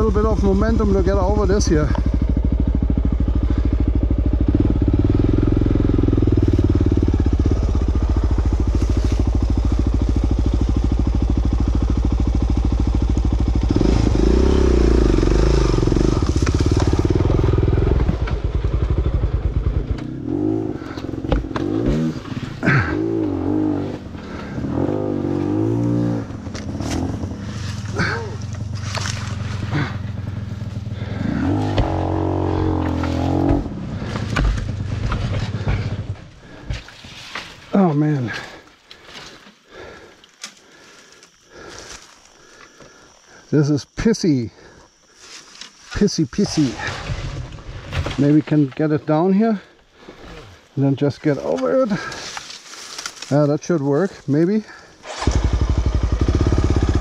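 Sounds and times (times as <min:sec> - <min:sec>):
dirt bike engine revving: 0:00.0 - 0:36.7, 0:54.6 - 0:57.0
knocks and clatter from bike: 0:20.9 - 0:22.4, 0:32.7 - 0:37.5.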